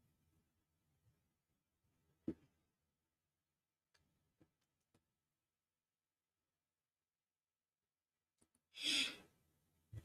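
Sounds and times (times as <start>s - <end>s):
person breathing out: 8.7s - 9.4s.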